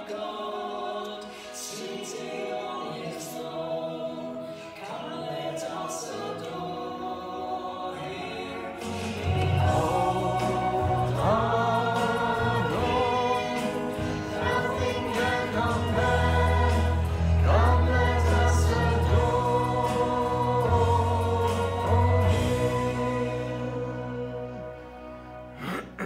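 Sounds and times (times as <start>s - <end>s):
congregation singing: 0.0s - 25.6s
instrumental accompaniment: 7.0s - 26.0s.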